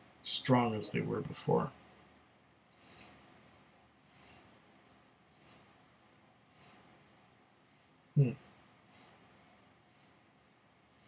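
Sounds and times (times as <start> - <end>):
faint high-pitched chirp: 2.7 - 3.2, 4.0 - 4.4, 5.3 - 5.7.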